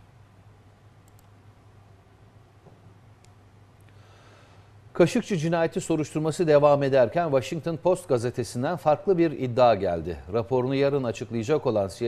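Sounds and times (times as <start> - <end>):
faint low hum: 0.0 - 12.0
soft clicks: 1.0 - 1.4, 3.2 - 4.0.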